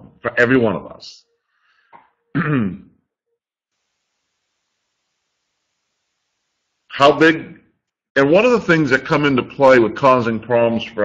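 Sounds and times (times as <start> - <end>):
man clearing his throat: 2.3 - 2.9.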